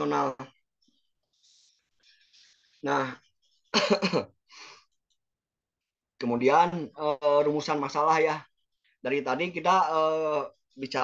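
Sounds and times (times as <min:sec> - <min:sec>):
person clearing throat: 0:03.7 - 0:04.4
person breathing: 0:04.5 - 0:05.0.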